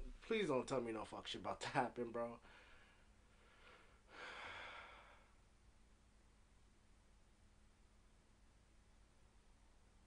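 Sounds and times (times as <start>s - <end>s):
breathy sigh: 2.4s - 5.4s.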